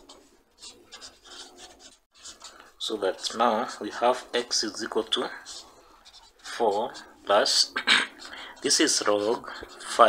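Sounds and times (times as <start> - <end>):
marker scratching on paper: 0.0 - 10.0.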